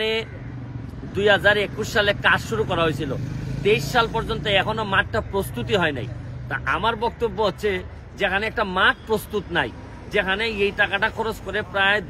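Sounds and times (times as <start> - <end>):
street traffic engine hum: 0.0 - 12.0
man speaking: 1.0 - 12.0.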